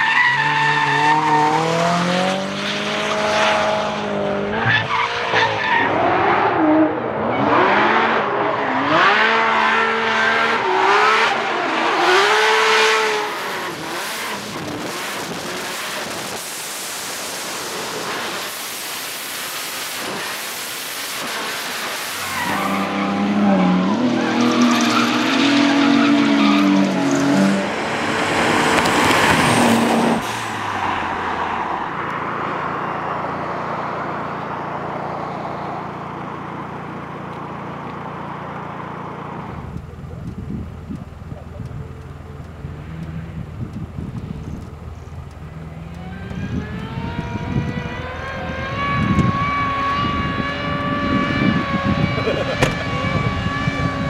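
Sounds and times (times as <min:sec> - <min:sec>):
tyres squealing and skidding: 0:00.0 - 0:02.8, 0:04.5 - 0:16.2, 0:21.2 - 0:31.9, 0:46.0 - 0:54.0
car engines revving: 0:00.0 - 0:54.0.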